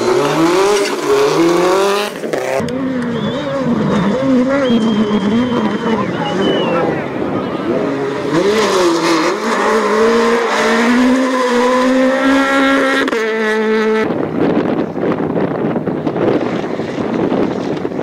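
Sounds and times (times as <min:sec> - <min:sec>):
rally car engine revving: 0:00.0 - 0:18.0
second rally car engine: 0:00.0 - 0:18.0.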